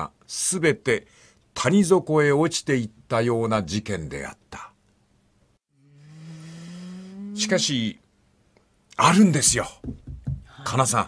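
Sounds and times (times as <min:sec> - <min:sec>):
man humming rising in pitch: 0:05.7 - 0:07.9.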